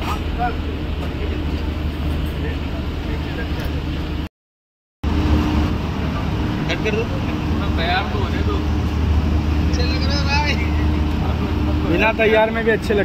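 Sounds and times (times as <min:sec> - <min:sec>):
low engine hum: 0:00.0 - 0:04.3, 0:05.0 - 0:13.0.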